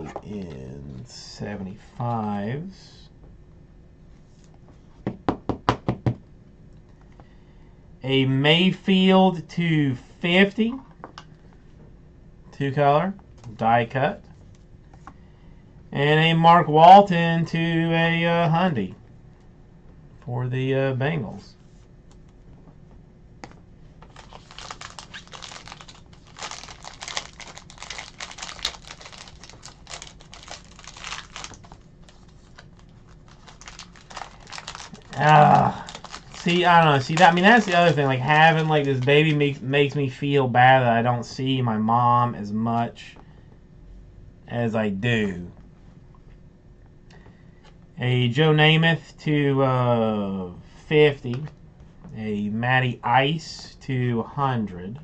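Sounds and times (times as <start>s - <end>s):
knocks on a tabletop: 5.0s - 6.2s
foil wrapper crinkling: 24.1s - 39.4s.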